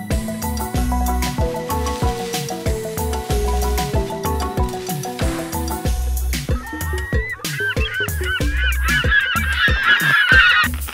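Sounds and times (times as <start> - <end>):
music with steady beat: 0.0 - 10.9
flock of birds calling: 1.2 - 10.9.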